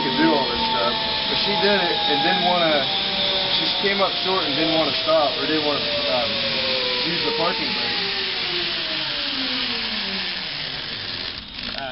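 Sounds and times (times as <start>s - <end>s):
zipline pulleys whirring: 0.0s - 11.9s.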